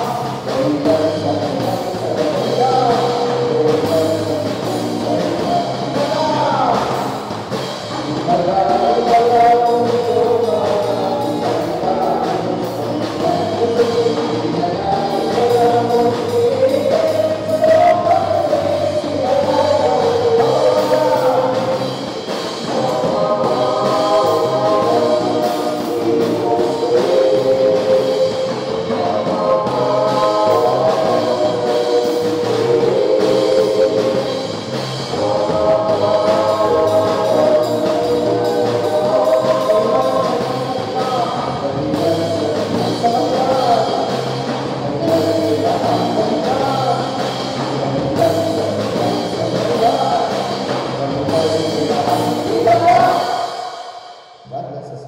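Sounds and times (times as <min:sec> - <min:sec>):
electric guitars: 0:00.0 - 0:53.7
group singing worship chorus: 0:00.0 - 0:54.1
drum kit: 0:00.0 - 0:55.0
live band accompaniment: 0:00.0 - 0:55.0.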